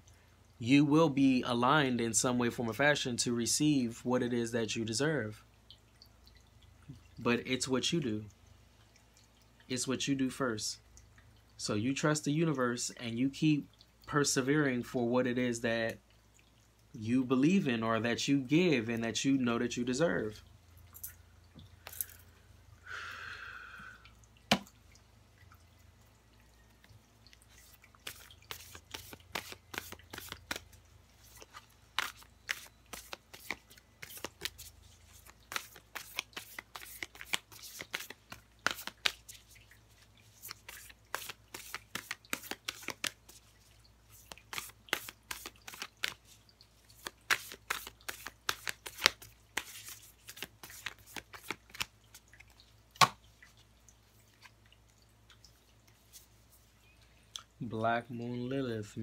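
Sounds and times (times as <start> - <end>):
cards handled on table: 28.0 - 30.7, 31.3 - 39.4, 40.4 - 43.4, 44.2 - 46.3, 47.0 - 52.2.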